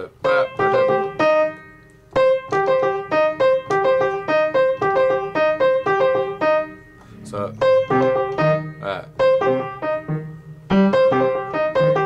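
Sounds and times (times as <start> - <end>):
piano arpeggio exercise: 0.0 - 12.0.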